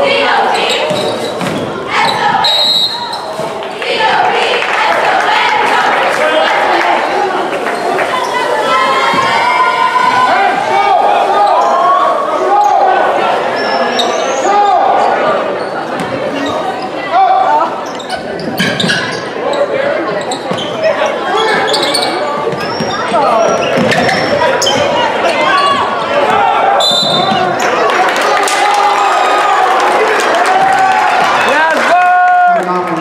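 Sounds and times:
people shouting and calling: 1.8s - 15.4s, 20.9s - 32.6s.

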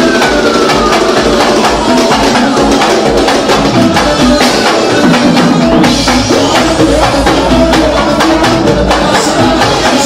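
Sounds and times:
drums and percussion: 0.0s - 10.0s
electric guitar: 0.0s - 10.0s
live band instrumental groove: 0.0s - 10.0s.

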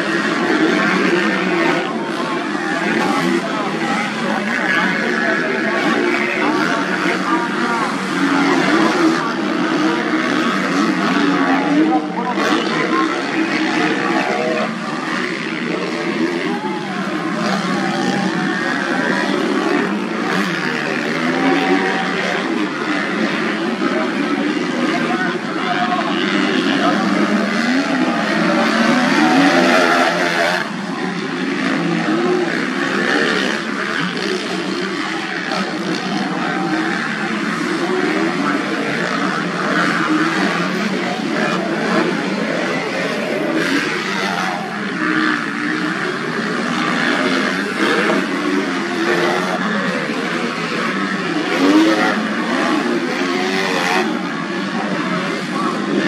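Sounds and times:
motocross bike engines racing: 0.0s - 56.0s.

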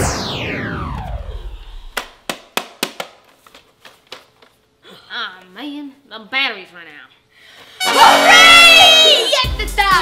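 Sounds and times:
music with falling pitch glide: 7.8s - 10.0s.

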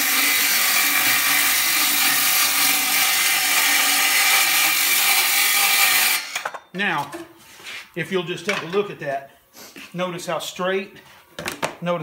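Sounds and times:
circular saw ripping wood: 0.0s - 6.4s.

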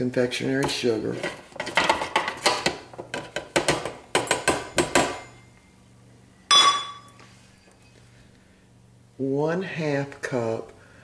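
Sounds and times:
sharp metallic clank: 6.5s - 7.2s.

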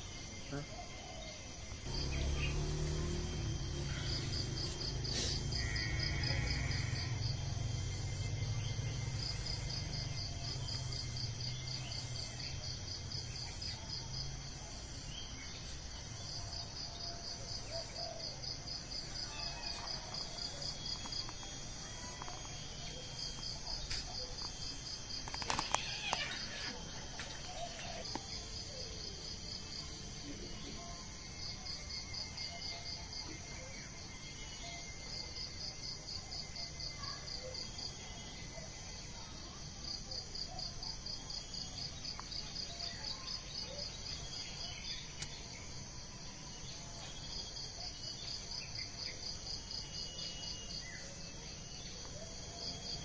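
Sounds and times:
high insect whine: 0.0s - 53.0s
insects chirping in pulses: 0.0s - 53.0s.

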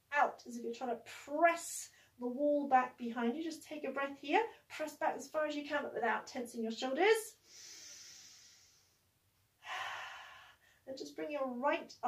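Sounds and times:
woman breathing in: 7.4s - 10.8s.

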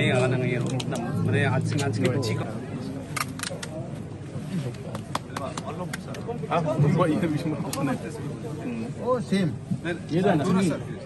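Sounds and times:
low background chatter: 0.0s - 11.0s.

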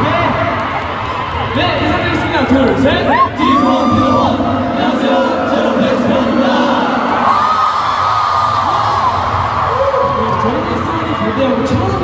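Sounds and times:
concert crowd cheering: 0.0s - 12.0s
high-pitched screams: 3.1s - 4.3s.

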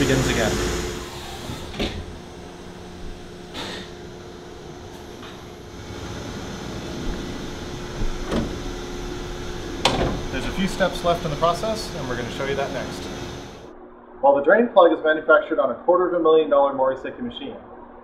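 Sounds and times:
lathe humming: 0.0s - 13.7s.

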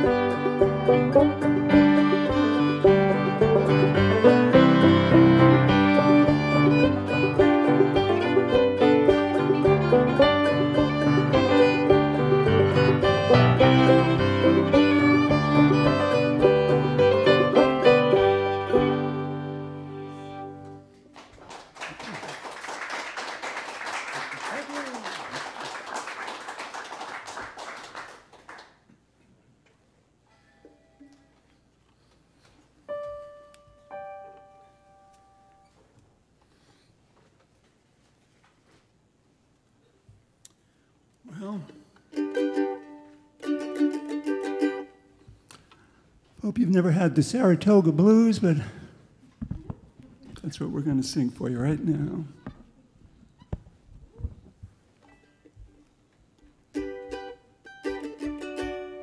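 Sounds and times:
banjo: 0.0s - 20.5s, 42.1s - 45.0s, 56.7s - 59.0s
keyboard playing: 0.0s - 20.9s, 32.9s - 35.7s
fiddle: 0.0s - 21.0s, 42.1s - 45.4s, 56.7s - 59.0s
audience applause: 21.1s - 28.8s.

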